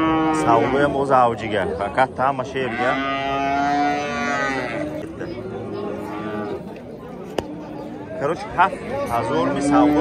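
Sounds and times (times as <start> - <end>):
bull mooing: 0.0 - 1.0, 2.6 - 5.0, 9.0 - 10.0
people talking: 4.2 - 10.0.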